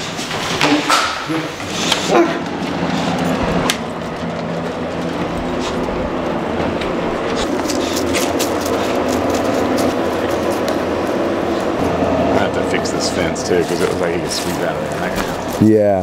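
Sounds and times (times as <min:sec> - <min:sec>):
steady rumbling noise: 0:00.0 - 0:16.0.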